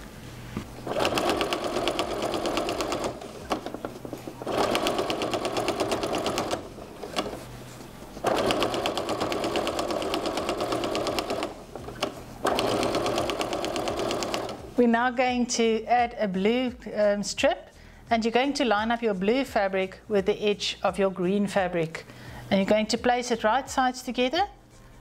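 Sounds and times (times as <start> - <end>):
electric sewing machine stitching: 0.7 - 14.7.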